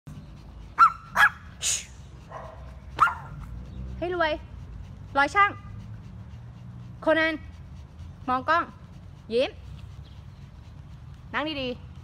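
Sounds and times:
small dogs barking: 0.7s - 1.6s, 2.2s - 3.6s.

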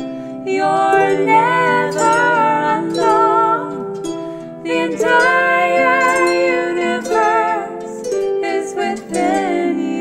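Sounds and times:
plucked harp: 0.0s - 10.0s
woman singing folk song: 0.4s - 4.0s, 4.6s - 10.0s.

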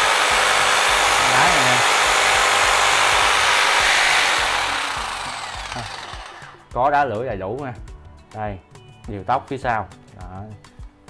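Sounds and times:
motor winding down whine: 0.0s - 6.7s
reciprocating saw running: 0.0s - 6.8s.

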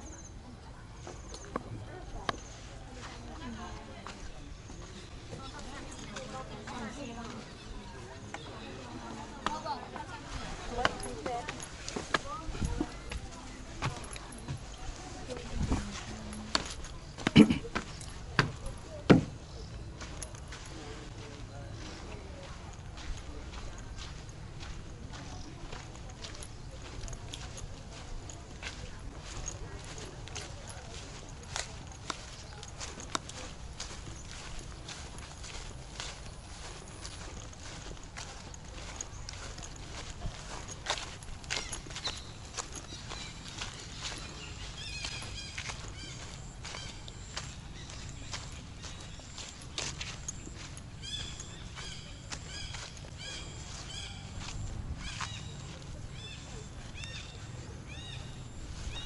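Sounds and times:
footsteps on dirt path: 0.0s - 59.0s.

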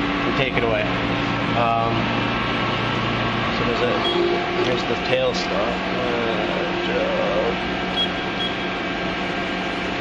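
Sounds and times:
machinery humming: 0.0s - 10.0s.

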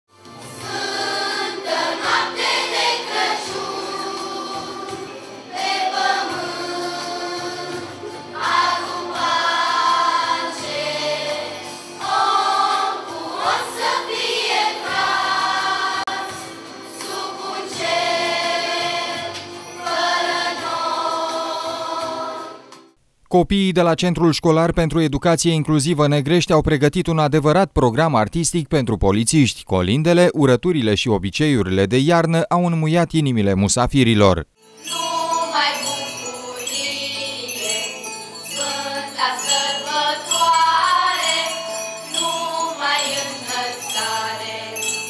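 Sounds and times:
children's choir singing a carol: 0.4s - 22.8s, 34.8s - 45.0s.

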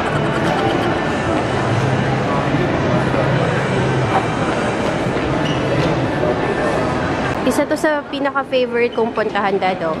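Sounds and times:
shopping mall din: 0.0s - 10.0s.

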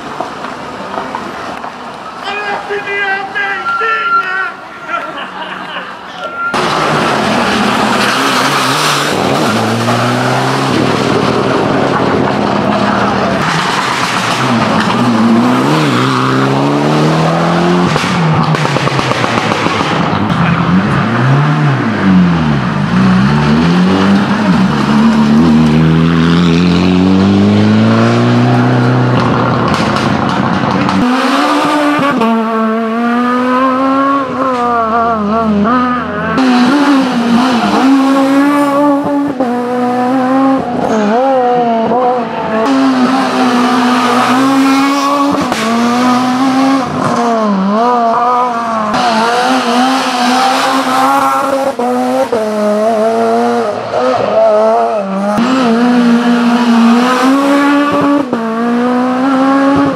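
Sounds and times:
rally car engine accelerating: 6.4s - 59.9s
rally car engine revving hard: 6.6s - 59.9s.

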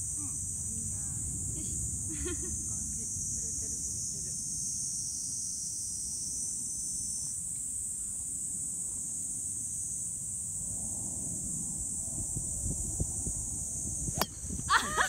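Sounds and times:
high-pitched insect drone: 0.0s - 15.0s
wind rumble on microphone: 10.6s - 15.0s.

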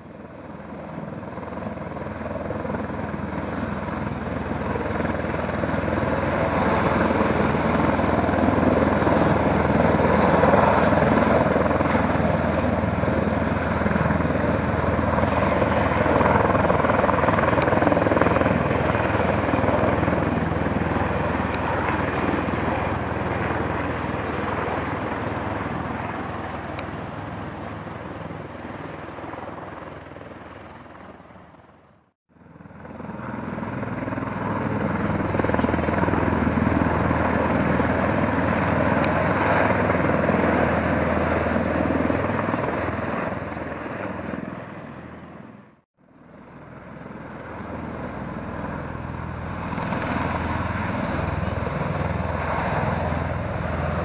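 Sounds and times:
helicopter flying overhead: 0.0s - 54.0s.

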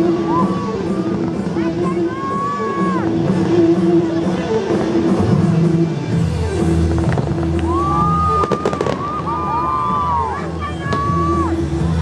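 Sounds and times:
fireworks crackling and popping: 0.0s - 12.0s
loud music: 0.0s - 12.0s.

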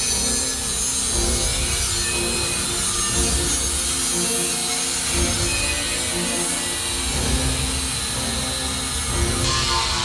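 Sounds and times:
angle grinder scrubbing metal: 0.0s - 10.0s.

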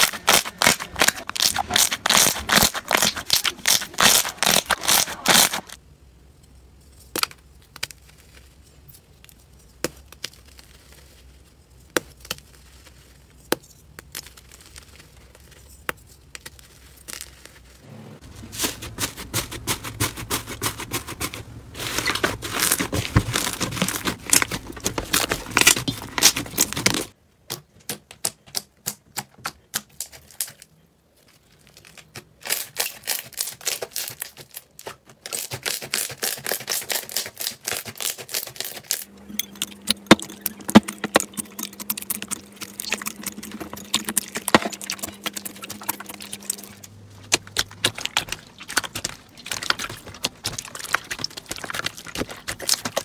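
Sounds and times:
crunchy slime crackling: 0.0s - 5.8s, 9.3s - 27.2s, 29.8s - 53.0s.

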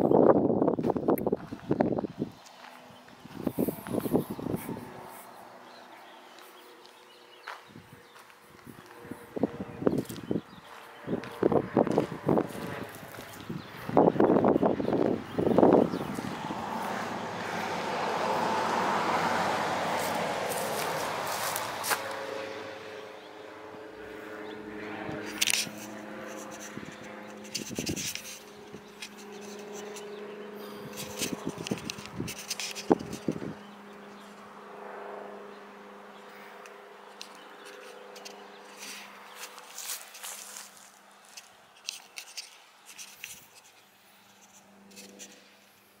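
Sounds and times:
vehicle passing by: 0.1s - 46.0s
footsteps crunching on gritty pavement: 0.8s - 22.3s, 37.2s - 43.8s.

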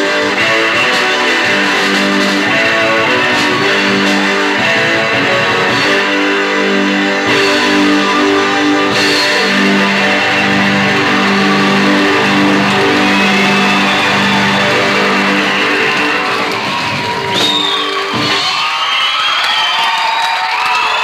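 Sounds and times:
electric guitar: 0.0s - 18.4s
rock band playing: 0.0s - 18.8s.

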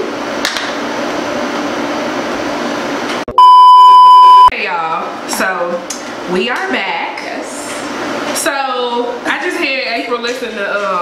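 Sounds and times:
high-pitched test tone beep: 3.3s - 4.5s.

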